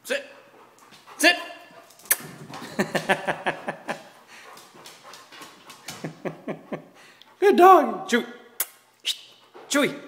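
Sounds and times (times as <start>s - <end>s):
dog's paws on wooden stairs: 0.6s - 6.8s.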